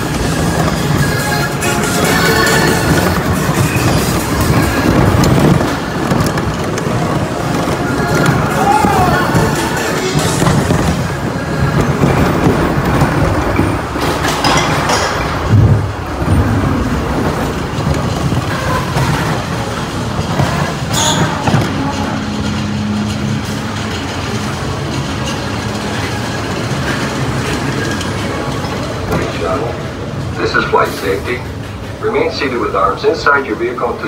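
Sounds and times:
roller coaster rumbling on track: 0.0s - 34.0s.

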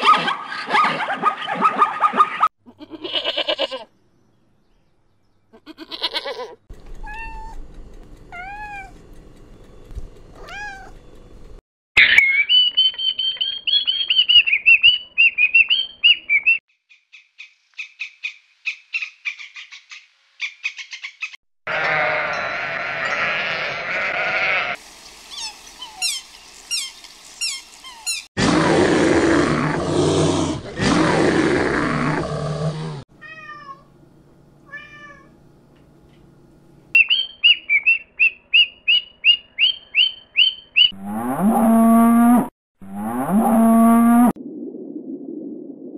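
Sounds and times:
sheep bleating: 2.7s - 3.9s, 5.6s - 6.6s, 21.7s - 24.8s
cat meowing: 5.7s - 7.6s, 8.3s - 9.0s, 10.4s - 11.0s, 33.2s - 33.9s, 34.7s - 35.3s.

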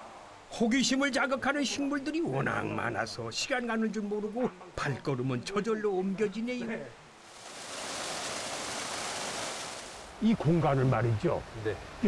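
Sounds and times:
water splashing into pond: 7.2s - 10.2s.

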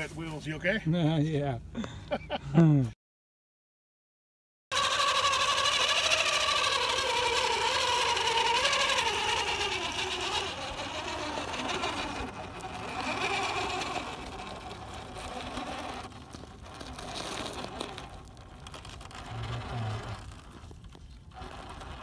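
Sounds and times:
electric motor whining: 4.7s - 22.0s.

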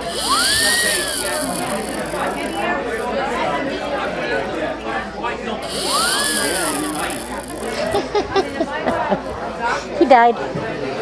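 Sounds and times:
toy whistle mock snore: 0.0s - 2.6s, 5.6s - 7.8s
crowd chatter: 0.0s - 11.0s.

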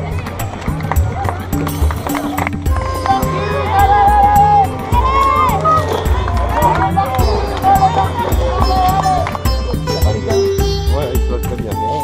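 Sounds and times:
song with steady bass beat: 0.0s - 12.0s.

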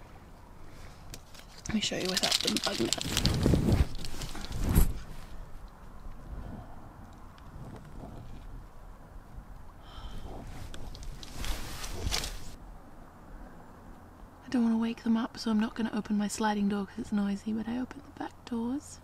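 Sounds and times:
rustling noise: 0.0s - 6.6s, 10.1s - 12.6s.

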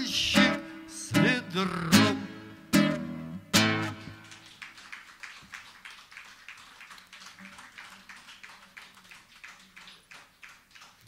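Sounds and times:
sparse applause: 3.6s - 11.0s.

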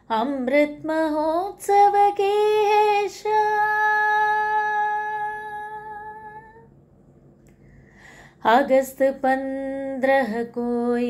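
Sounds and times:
woman singing a long note: 0.1s - 6.7s.

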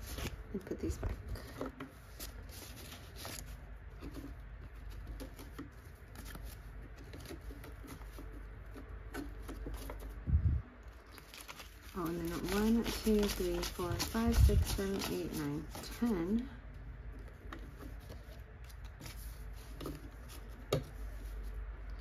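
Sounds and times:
banknotes rustling: 0.0s - 10.2s, 10.9s - 16.6s.

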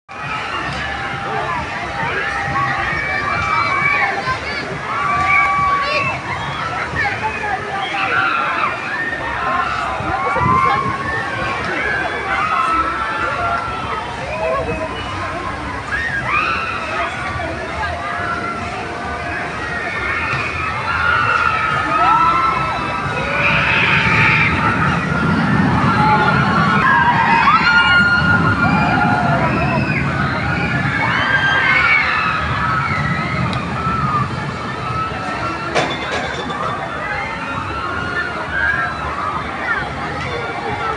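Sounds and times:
people's voices: 0.1s - 40.9s
riders screaming: 19.8s - 35.6s
low rumble: 21.7s - 35.6s.

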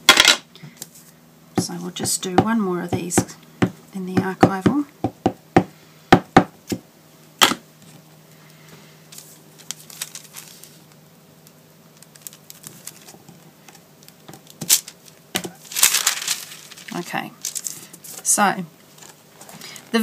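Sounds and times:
tissue paper crinkling: 9.2s - 10.9s, 12.0s - 13.2s, 14.7s - 18.3s.

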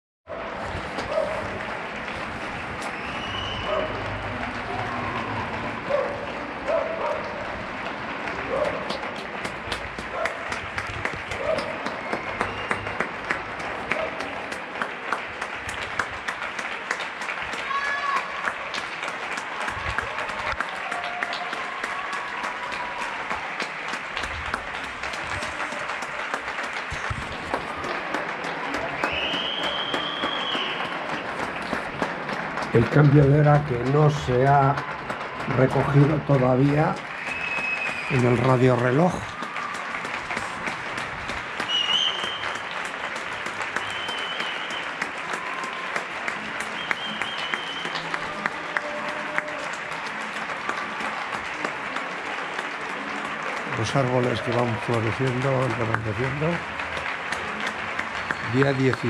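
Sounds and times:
crowd applause: 0.3s - 59.0s.

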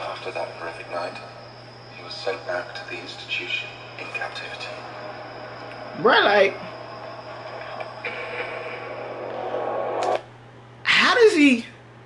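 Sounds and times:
tense held musical tone: 0.0s - 10.5s.

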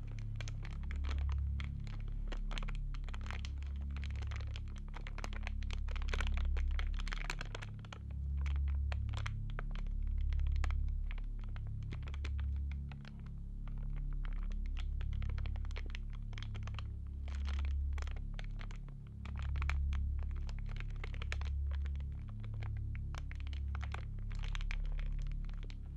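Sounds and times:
crackling clicks: 0.0s - 25.9s
droning bass: 0.0s - 25.9s.

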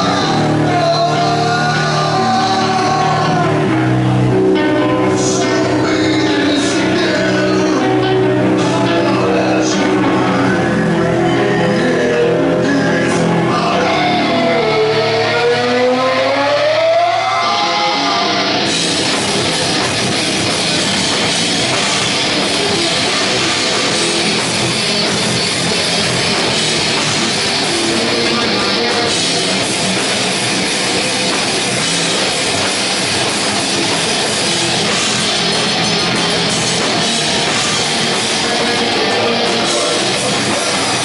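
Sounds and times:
drum kit: 0.0s - 10.8s, 17.0s - 41.0s
held guitar note sliding in pitch: 13.7s - 40.9s.

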